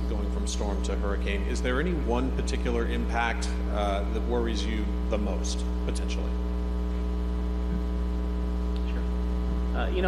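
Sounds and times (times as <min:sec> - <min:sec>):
man speaking: 0:00.0 - 0:06.4
electrical mains hum: 0:00.0 - 0:10.0.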